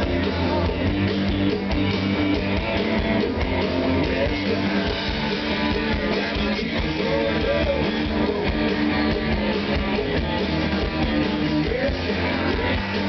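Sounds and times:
drum kit: 0.0 - 13.0
electric guitar: 0.0 - 13.0
rock band playing: 0.0 - 13.0.

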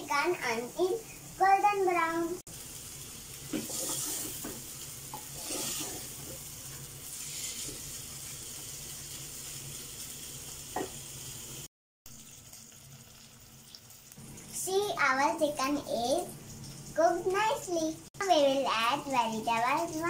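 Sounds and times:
chicken sizzling in oil: 0.0 - 20.0
spatula scraping a pot: 3.6 - 4.4, 5.1 - 6.4.

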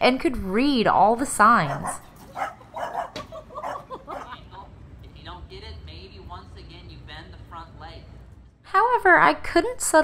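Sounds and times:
small dog making high calls: 1.7 - 4.3.

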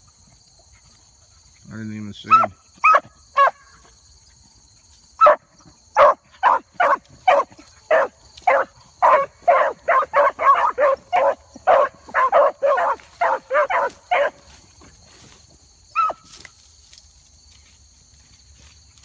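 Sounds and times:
dogs barking: 2.3 - 3.7, 5.2 - 14.5.

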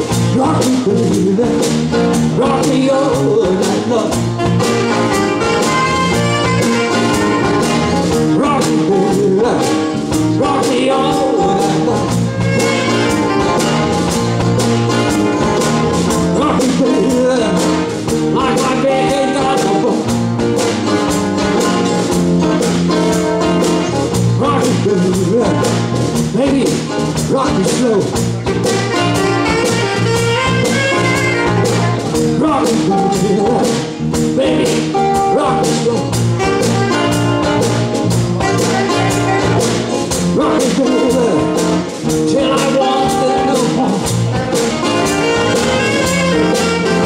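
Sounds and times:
blues band playing: 0.0 - 47.0
drum beat: 0.0 - 47.0
saxophone: 4.3 - 8.4, 12.1 - 16.4, 28.4 - 32.3, 36.2 - 40.1, 44.5 - 47.0.

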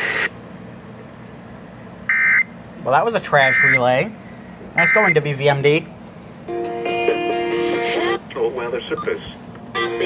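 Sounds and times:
radio static hiss with tone: 0.0 - 0.3.

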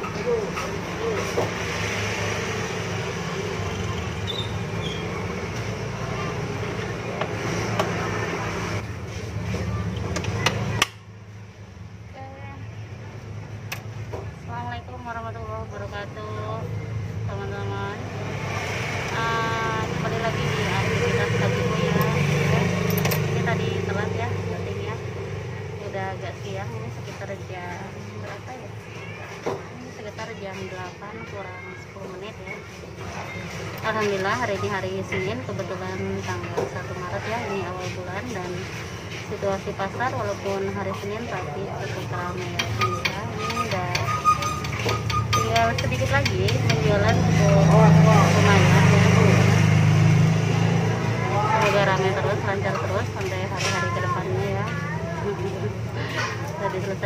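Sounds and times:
vehicle engine humming: 0.0 - 29.2, 29.8 - 57.0.

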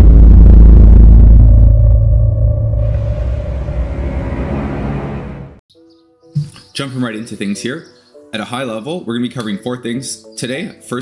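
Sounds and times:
deep cinematic boom: 0.0 - 5.6
steady drone tone: 0.0 - 5.6.

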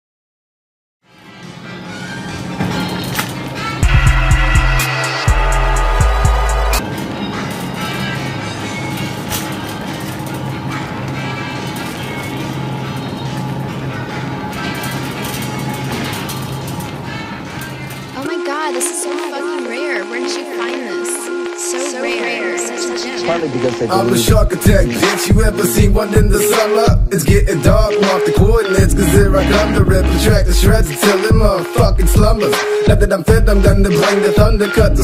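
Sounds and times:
heavy bass: 3.8 - 6.8, 23.3 - 35.0
instrumental rap beat: 3.8 - 6.8, 18.2 - 35.0.

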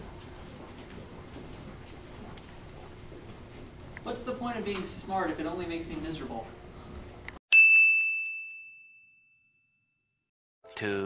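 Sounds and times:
bright chime ding: 7.5 - 9.8.

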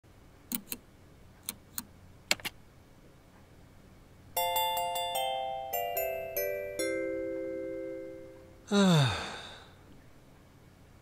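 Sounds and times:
computer keys clicking: 1.4 - 2.6.

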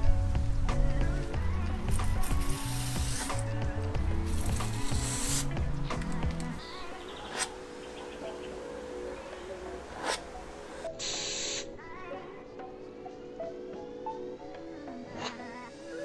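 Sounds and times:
background music with bass line: 0.0 - 11.1
spray paint can hissing: 1.9 - 6.4, 11.0 - 11.7.

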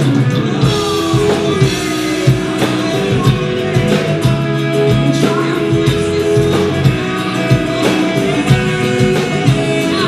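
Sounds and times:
acoustic and electric guitars: 0.0 - 10.0
bass guitar: 0.0 - 10.0
drum kit steady beat: 0.0 - 10.0.

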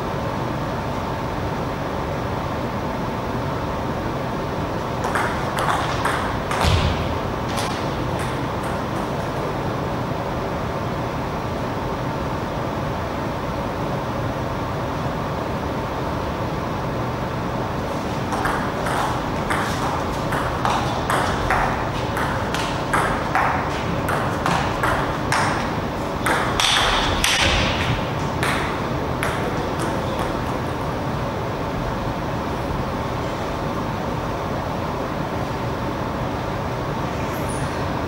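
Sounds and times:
steady hum: 0.0 - 38.0.

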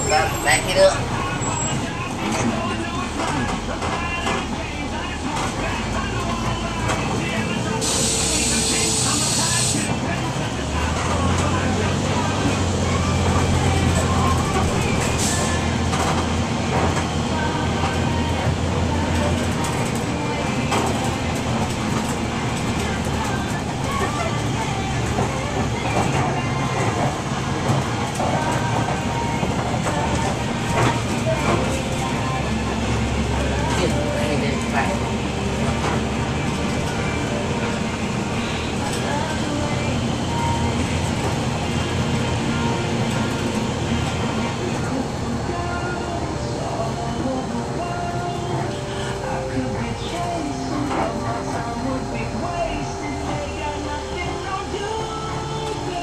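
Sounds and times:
bus engine running: 0.0 - 56.0.

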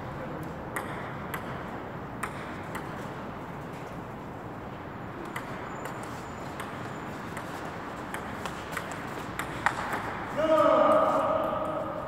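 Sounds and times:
table tennis ball clicking: 0.7 - 1.6, 2.2 - 3.0, 5.2 - 10.2
person shouting: 10.4 - 11.9.

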